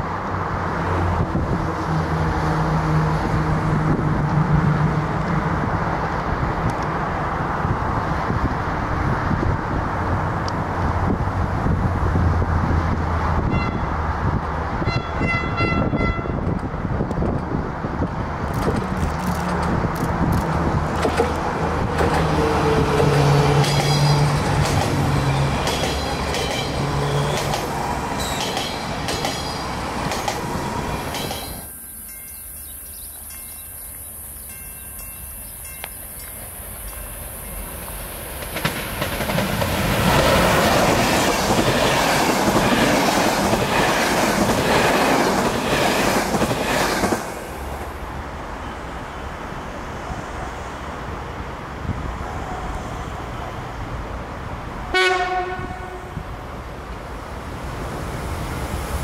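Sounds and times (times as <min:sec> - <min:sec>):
train wheels clicking over rail joints: 0:18.4 - 0:22.4, 0:23.0 - 0:31.7, 0:37.7 - 0:47.8.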